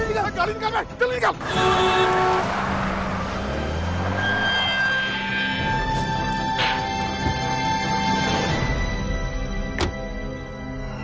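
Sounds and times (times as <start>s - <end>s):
car horn: 1.4s - 3.3s
car driving: 1.4s - 7.9s.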